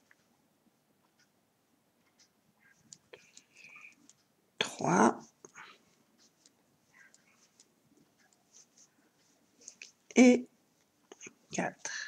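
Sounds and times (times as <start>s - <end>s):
crochet hook scratchy ticks: 6.2s - 10.3s.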